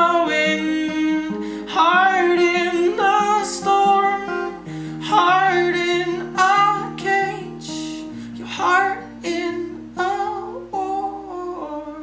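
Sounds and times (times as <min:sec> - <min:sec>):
acoustic guitar strumming: 0:00.0 - 0:12.0
man singing: 0:00.0 - 0:12.0.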